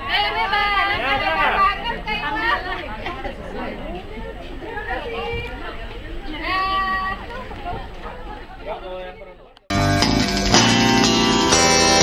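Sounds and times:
children chattering and calling out: 0:00.0 - 0:09.6.

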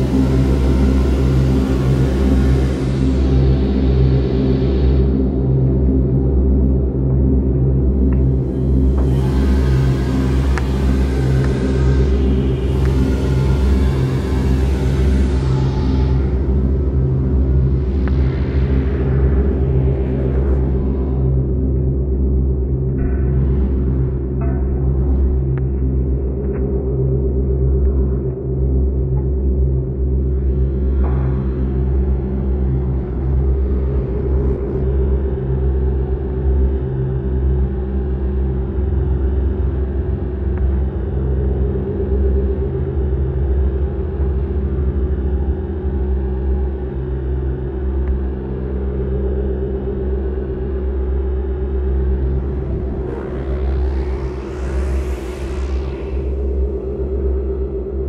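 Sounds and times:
electronic bass drone: 0:00.0 - 0:58.0
rising and falling synth sweep: 0:49.6 - 0:58.0.

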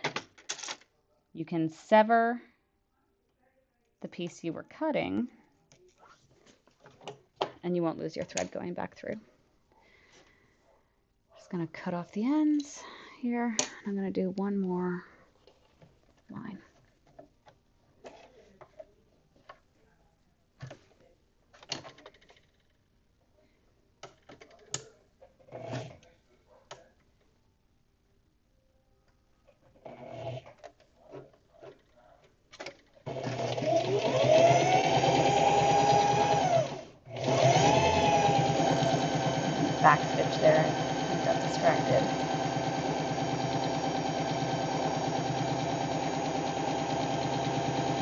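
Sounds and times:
sewing machine motor whine: 0:33.1 - 0:48.0.

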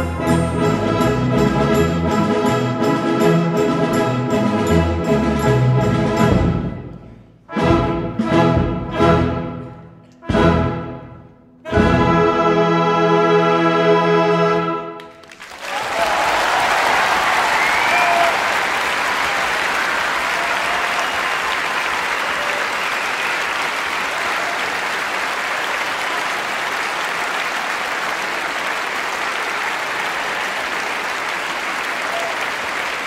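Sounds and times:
audience applauding: 0:15.0 - 0:33.0
cheers: 0:15.3 - 0:33.0.

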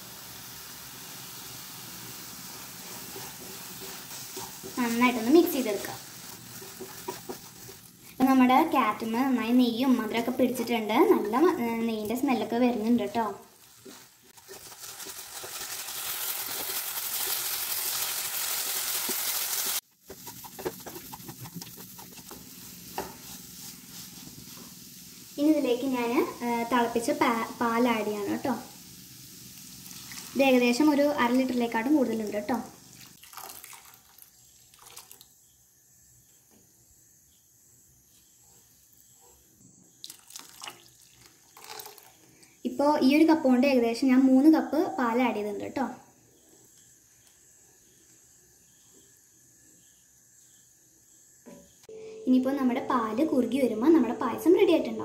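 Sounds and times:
carrot sizzling in a frying pan: 0:00.0 - 0:55.0
spatula scraping and tapping pan: 0:02.8 - 0:07.9, 0:20.0 - 0:24.7
milk pouring and splashing: 0:12.8 - 0:22.9, 0:29.6 - 0:30.4, 0:32.9 - 0:35.4, 0:40.0 - 0:42.4.

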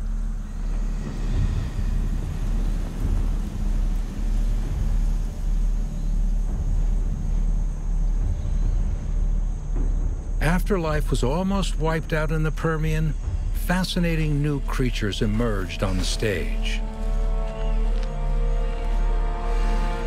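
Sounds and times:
deep pulsing rumbling drone: 0:00.0 - 0:20.0.

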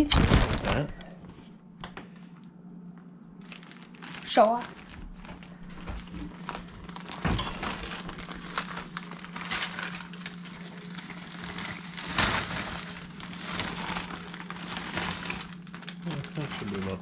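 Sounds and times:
plastic bag crinkling: 0:00.0 - 0:01.0, 0:03.4 - 0:17.0
frozen vegetables clattering into skillet: 0:06.3 - 0:17.0.

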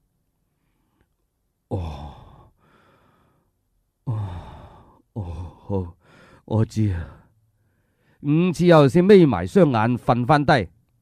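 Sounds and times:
man sighing: 0:01.7 - 0:03.4, 0:04.0 - 0:06.4
faint breath: 0:01.8 - 0:08.2.

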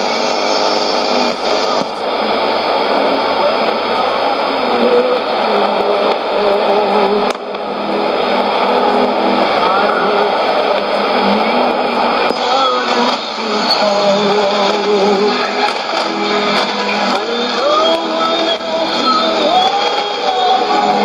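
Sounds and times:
radio hiss and static: 0:00.0 - 0:21.0
weak radio voice: 0:00.0 - 0:21.0.

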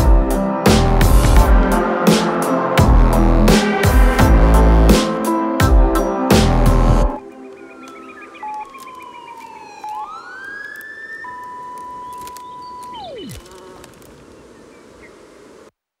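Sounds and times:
gliding synth tones: 0:07.1 - 0:13.9
low hiss: 0:09.5 - 0:16.0.

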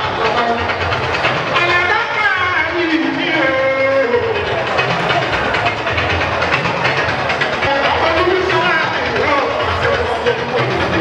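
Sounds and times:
crowd noise: 0:00.0 - 0:11.0
music: 0:00.0 - 0:11.0.

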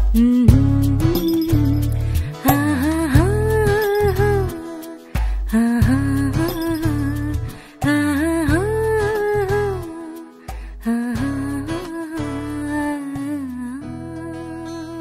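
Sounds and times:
bass: 0:00.0 - 0:04.6, 0:05.2 - 0:09.9, 0:10.5 - 0:15.0
plucked guitar: 0:00.0 - 0:15.0.

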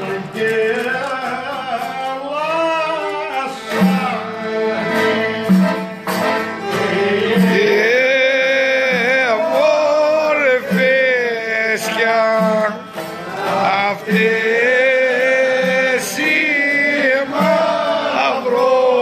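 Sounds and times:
man singing: 0:00.0 - 0:05.9, 0:06.6 - 0:19.0
violin playing: 0:00.0 - 0:09.4
low accompaniment: 0:00.0 - 0:19.0.

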